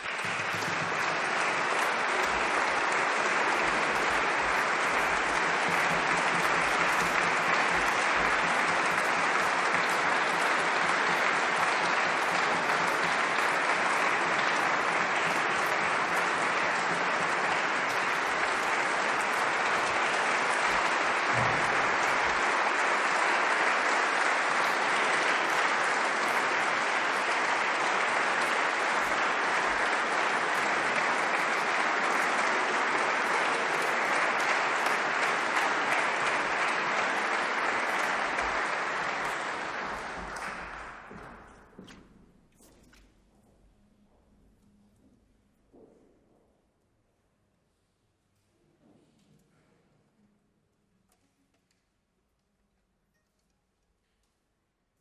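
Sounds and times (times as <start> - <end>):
audience applauding: 0.0 - 41.8.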